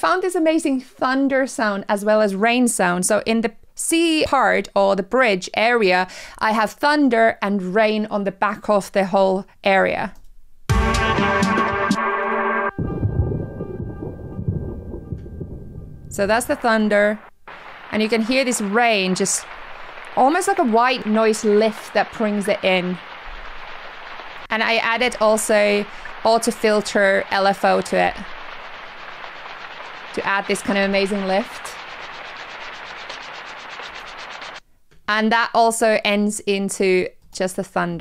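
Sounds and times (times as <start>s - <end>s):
low rumbling thunder: 12.8s - 23.6s
filtered rain hiss: 16.0s - 34.6s.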